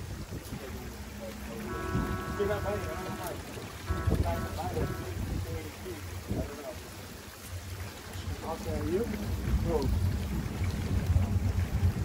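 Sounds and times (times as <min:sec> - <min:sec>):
hiss of wind and water: 0:00.0 - 0:12.0
outboard motor rumbling: 0:00.0 - 0:12.0.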